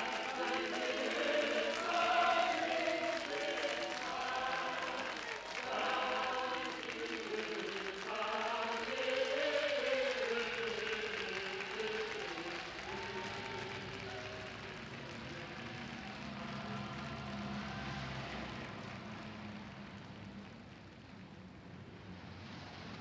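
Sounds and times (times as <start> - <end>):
voices singing with vibrato: 0.0 - 19.1
faint hiss: 0.0 - 23.0.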